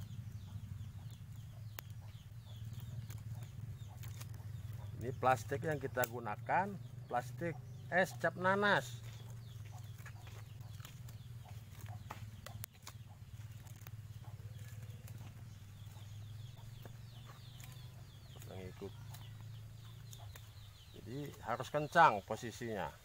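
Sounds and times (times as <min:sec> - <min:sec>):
chickens clucking: 0:00.0 - 0:23.0.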